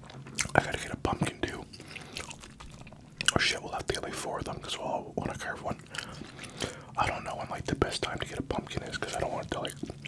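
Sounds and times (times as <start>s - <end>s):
wet chewing: 0.0s - 0.7s, 1.9s - 3.4s, 5.8s - 6.8s, 9.1s - 10.0s.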